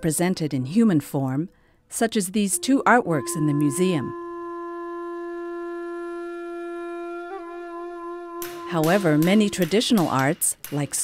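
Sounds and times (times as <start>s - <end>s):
long held wind instrument note: 2.0s - 10.4s.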